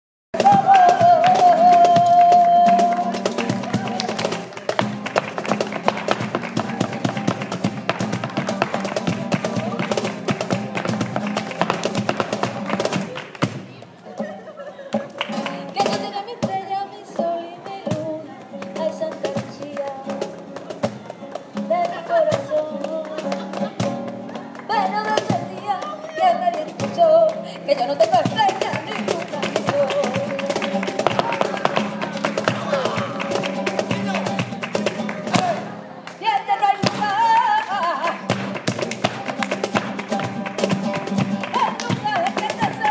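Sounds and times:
person singing: 0.4s - 4.8s, 21.0s - 23.6s, 24.3s - 38.4s
cajon drum: 0.4s - 14.3s, 14.9s - 35.8s, 36.5s - 42.9s
acoustic guitar: 0.4s - 42.9s
hand clapping: 1.2s - 13.5s, 18.7s - 36.2s, 36.8s - 42.9s
footwork on wooden board: 4.7s - 13.6s.

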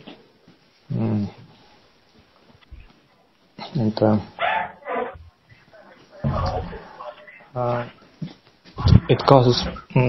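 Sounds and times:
short animal calls: 4.4s - 8.0s.

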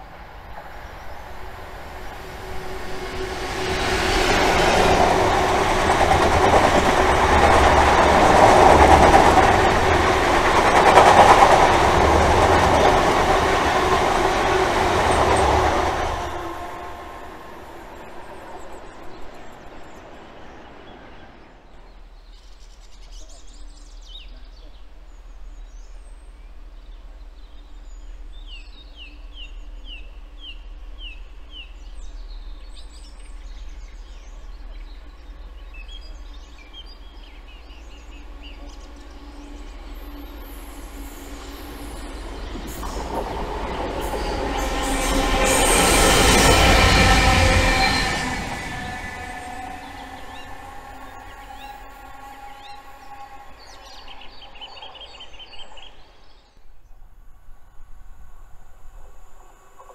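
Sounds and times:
diesel locomotives passing: 0.0s - 22.2s, 26.6s - 56.9s.

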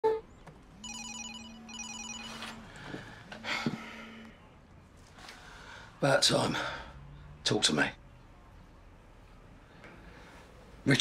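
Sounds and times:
warbling electronic ringtone: 0.8s - 2.5s.

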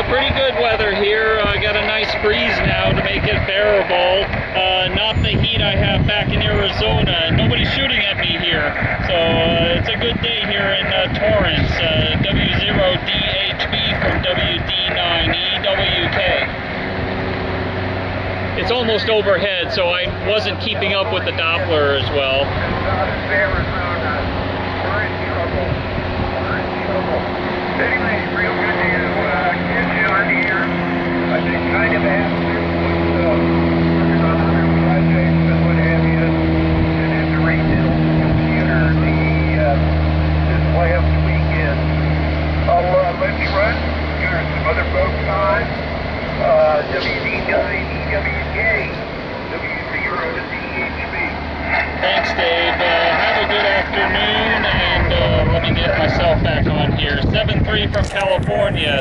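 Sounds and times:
vehicle engine humming: 0.0s - 59.0s.

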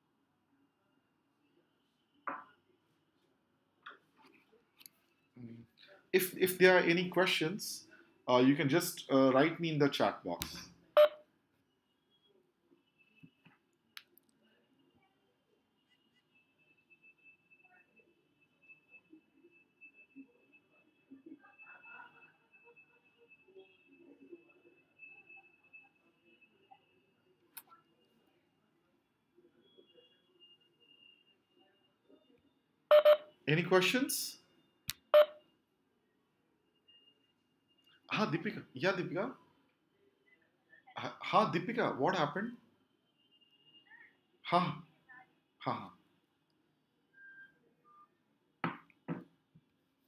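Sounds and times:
short electronic beep: 32.9s - 33.3s, 35.0s - 35.4s
man's voice: 38.1s - 39.3s.

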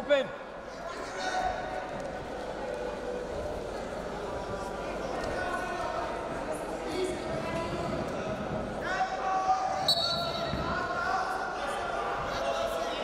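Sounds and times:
voices calling out in echoing hall: 0.0s - 13.0s.

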